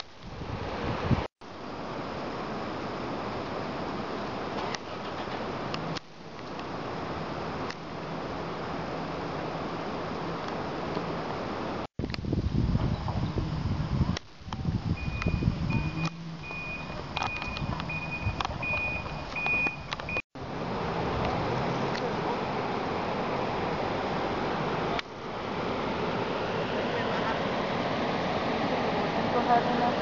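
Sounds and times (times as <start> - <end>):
background noise: 0.0 - 30.0
short high beeps: 15.0 - 20.2
steady rushing noise: 19.9 - 30.0.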